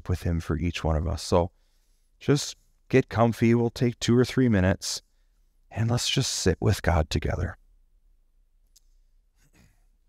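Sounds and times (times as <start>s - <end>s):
faint breath: 1.5s - 2.2s.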